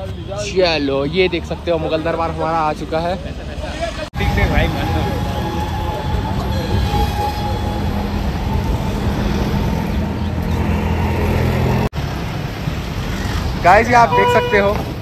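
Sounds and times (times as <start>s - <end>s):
traffic engines rumbling: 0.0s - 15.0s.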